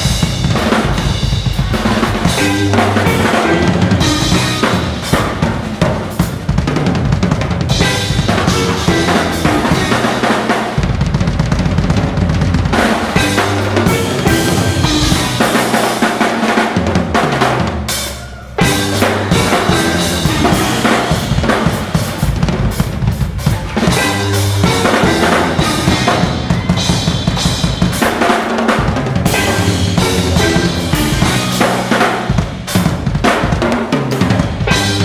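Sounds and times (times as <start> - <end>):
low held bass notes: 0.0 - 16.0, 18.5 - 28.0, 29.2 - 33.1
drum kit playing: 0.0 - 35.0.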